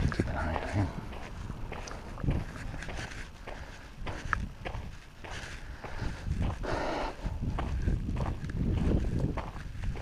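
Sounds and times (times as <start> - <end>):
footsteps crunching on gravel: 0.0 - 10.0.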